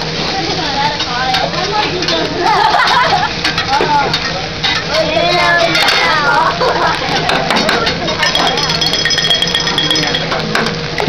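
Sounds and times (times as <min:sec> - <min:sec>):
faint voices: 0:00.0 - 0:11.0
food sizzling on a griddle: 0:00.0 - 0:11.0.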